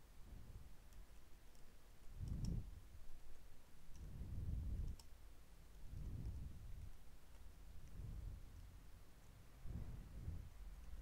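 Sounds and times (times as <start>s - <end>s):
dull low rumble: 0.2s - 0.8s, 2.1s - 3.2s, 4.0s - 5.0s, 5.8s - 7.0s, 7.7s - 11.0s.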